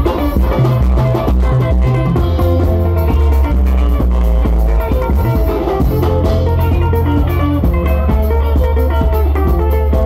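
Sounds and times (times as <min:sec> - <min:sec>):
bass line: 0:00.0 - 0:10.0
drum kit steady beat: 0:00.0 - 0:10.0
electric lead guitar: 0:00.0 - 0:10.0.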